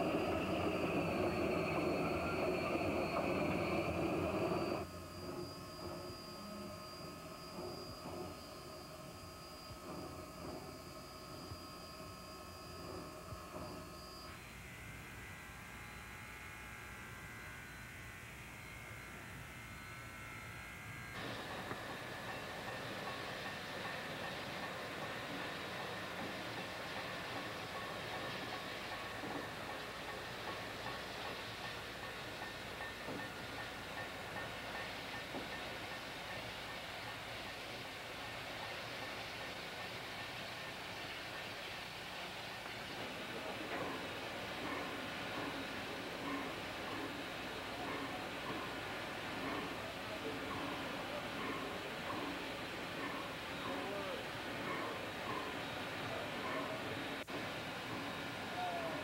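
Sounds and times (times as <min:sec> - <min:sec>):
locomotive running rush: 0:00.0 - 0:04.9, 0:21.2 - 0:59.0
steady held tones: 0:00.0 - 0:14.4.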